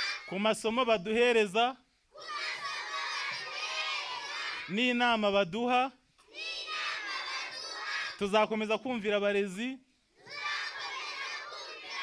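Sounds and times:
children chanting together: 0.0s - 0.4s, 2.1s - 4.7s, 6.3s - 8.3s, 10.2s - 12.0s
man speaking into a microphone: 0.3s - 1.8s, 4.7s - 6.0s, 8.2s - 9.8s.

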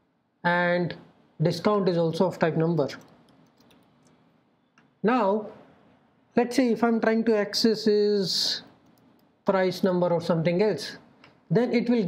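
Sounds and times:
faint keyboard clicks: 2.9s - 4.2s, 8.8s - 9.3s.

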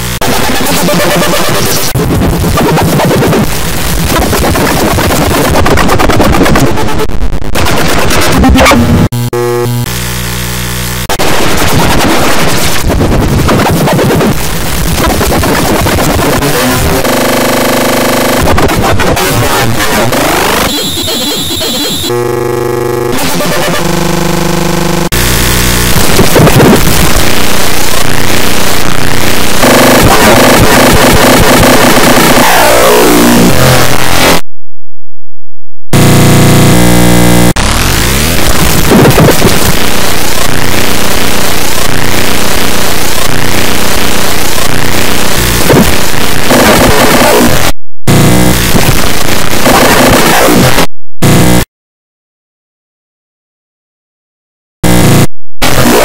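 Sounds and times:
distorted cartoon soundtrack: 0.0s - 34.4s, 36.0s - 51.7s, 54.8s - 56.0s.

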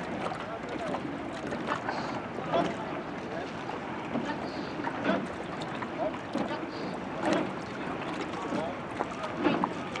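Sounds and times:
oar splash: 0.0s - 10.0s
water rushing past hull: 0.0s - 10.0s.

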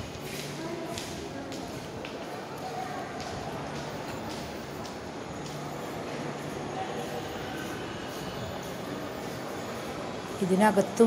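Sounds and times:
distant voices: 0.0s - 11.0s
escalator mechanical hum: 1.9s - 11.0s.

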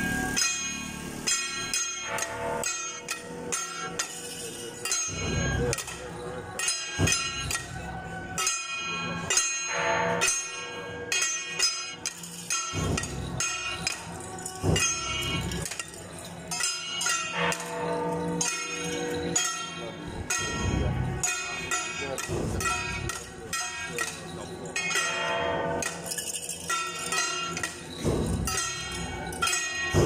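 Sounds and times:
ringing metal percussion: 0.0s - 30.0s
voices: 0.0s - 30.0s.

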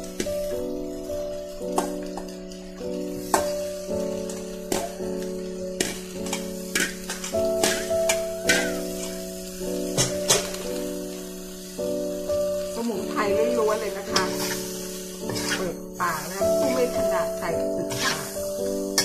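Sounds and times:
background music with held chords: 0.0s - 19.0s
food sizzling in a wok: 0.0s - 19.0s.

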